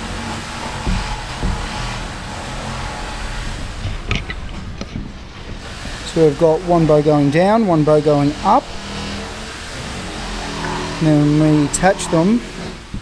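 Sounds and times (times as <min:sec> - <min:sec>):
wooden timbers knocking: 0:00.0 - 0:02.8
steady mechanical drone: 0:00.0 - 0:13.0.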